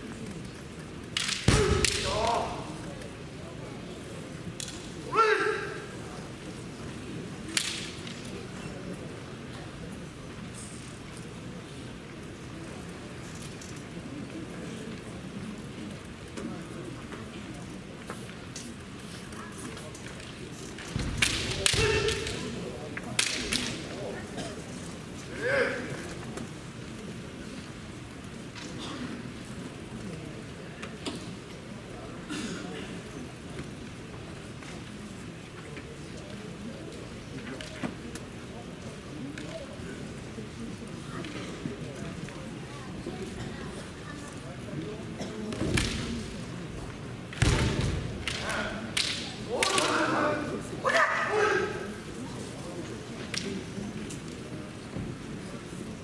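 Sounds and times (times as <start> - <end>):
bamboo swords clacking: 1.1 - 2.4, 20.8 - 24.0, 48.2 - 50.1
people shouting: 21.6 - 22.3, 49.5 - 51.9.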